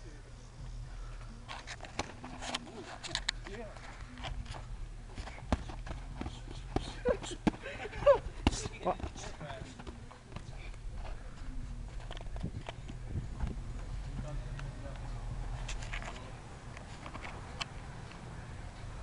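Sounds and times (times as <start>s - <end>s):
boxing gloves smacking: 5.2s - 10.5s.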